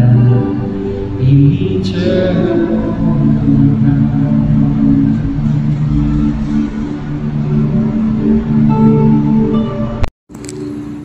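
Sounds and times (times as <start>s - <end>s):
keyboard chords: 0.0s - 10.8s
acoustic guitar: 0.0s - 10.9s.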